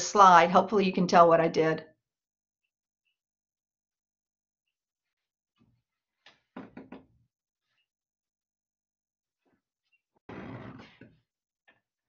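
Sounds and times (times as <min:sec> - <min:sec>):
soft knocks and thumps: 0:06.2 - 0:07.2.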